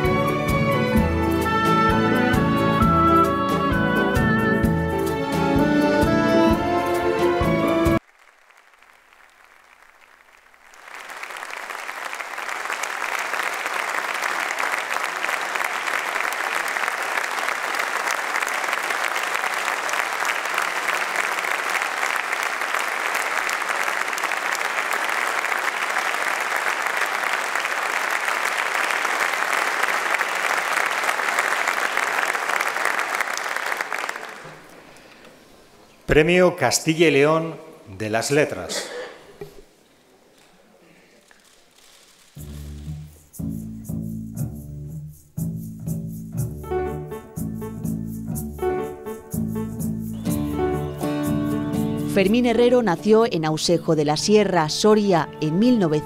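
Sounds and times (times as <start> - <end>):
audience applause: 7.9 - 35.0.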